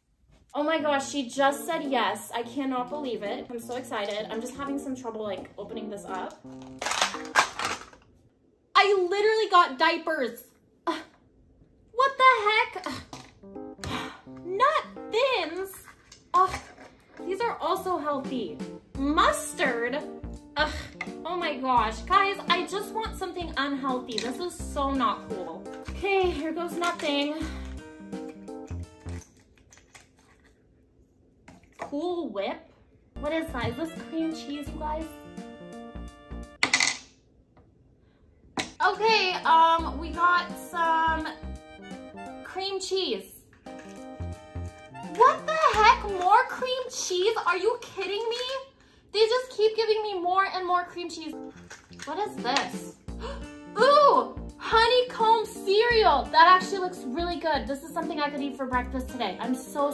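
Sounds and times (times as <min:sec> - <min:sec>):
background music: 0:00.8 - 0:07.9, 0:13.2 - 0:29.4, 0:33.2 - 0:36.6, 0:38.8 - 0:48.5, 0:50.8 - 0:59.9
plastic packaging crinkling: 0:06.3 - 0:08.1, 0:25.7 - 0:30.7, 0:43.6 - 0:44.3, 0:51.4 - 0:52.1.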